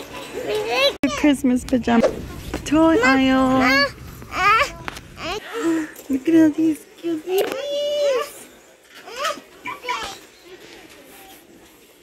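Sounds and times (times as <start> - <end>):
faint background murmur: 0.0 - 12.0.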